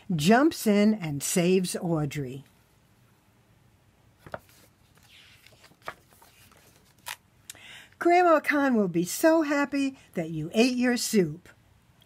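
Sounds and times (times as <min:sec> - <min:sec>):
book pages rustling: 0:04.2 - 0:07.2.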